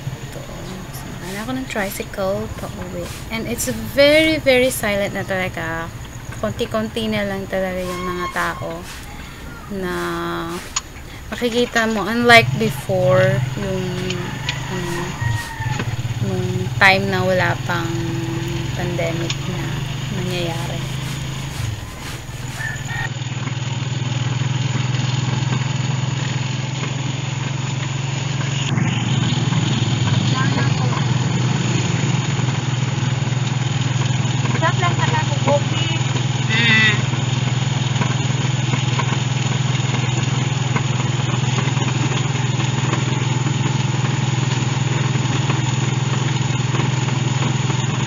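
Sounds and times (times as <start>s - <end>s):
motorcycle engine droning: 0.0s - 48.0s.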